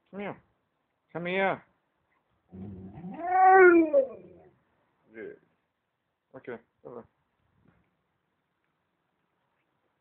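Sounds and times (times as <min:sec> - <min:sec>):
dog moaning vocalization: 0:02.6 - 0:04.4.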